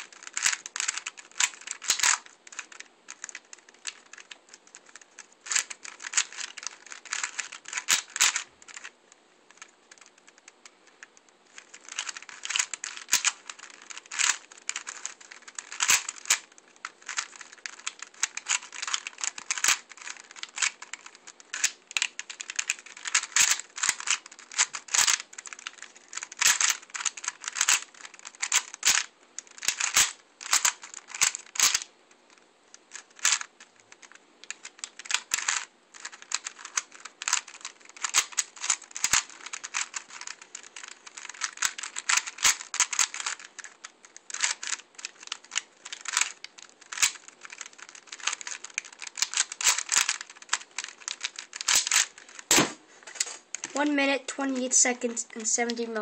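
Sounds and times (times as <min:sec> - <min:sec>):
plastic puzzle clicking: 0:00.0 - 0:56.0.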